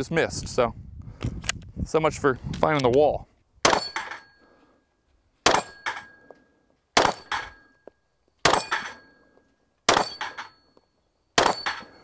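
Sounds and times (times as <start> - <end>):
pistol shots: 3.6 - 4.2, 5.4 - 6.0, 7.0 - 7.6, 8.4 - 9.0, 9.9 - 10.5, 11.4 - 11.9
steel target clang: 3.6 - 4.4, 5.4 - 6.2, 7.0 - 7.8, 8.4 - 9.2, 9.9 - 10.7, 11.4 - 12.0.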